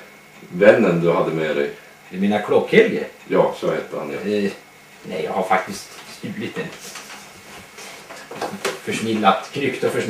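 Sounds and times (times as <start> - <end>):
man speaking: 0.4 - 7.2, 8.6 - 10.0.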